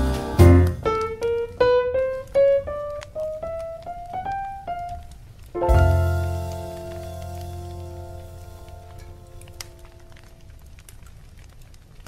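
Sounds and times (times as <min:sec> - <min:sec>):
jazz piano: 0:00.0 - 0:10.6.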